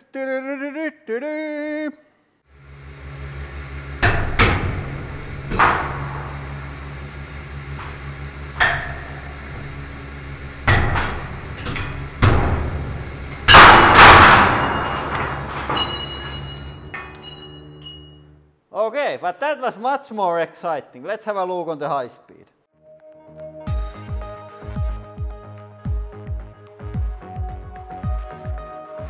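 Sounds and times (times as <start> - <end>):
hydraulic press humming: 2.6 - 18.3
sharp metallic cracks: 13.4 - 17.2
faint high ringing: 14.6 - 18.4.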